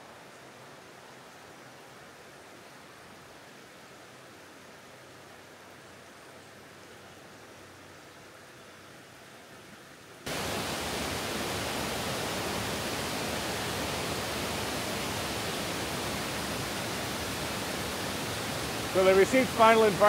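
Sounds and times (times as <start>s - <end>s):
faint background hiss: 0.0s - 20.0s
water rushing over spillway: 10.2s - 20.0s.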